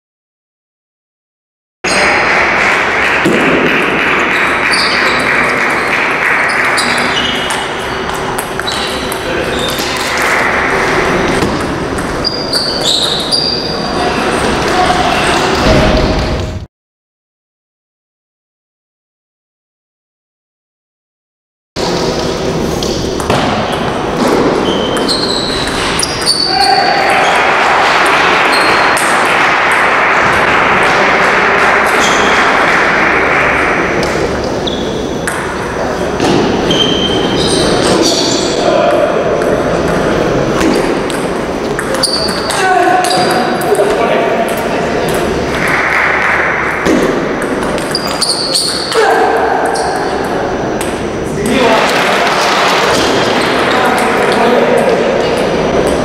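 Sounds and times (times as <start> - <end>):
crowd noise in a hall: 1.8 - 16.7, 21.8 - 56.0
voices echoing: 1.9 - 16.0, 21.8 - 56.0.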